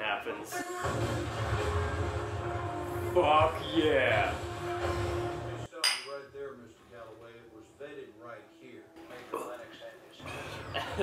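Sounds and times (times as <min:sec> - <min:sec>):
drinking glass clink: 0:05.8 - 0:06.2.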